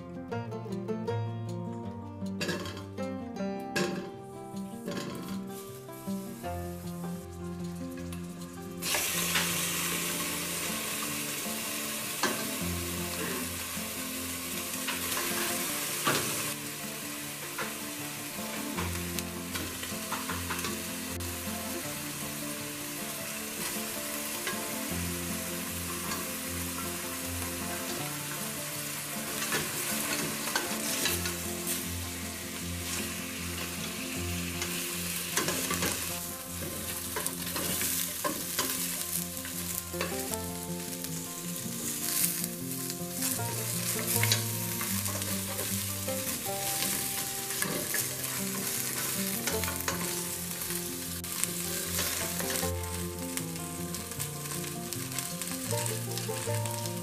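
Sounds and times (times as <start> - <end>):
meat sizzling in hot oil: 4.3 - 57.0.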